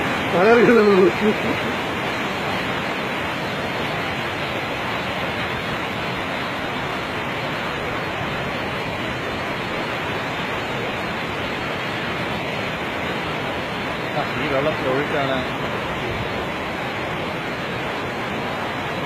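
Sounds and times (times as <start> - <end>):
falling rain: 0.0 - 19.0
flooded river rushing: 0.0 - 19.0.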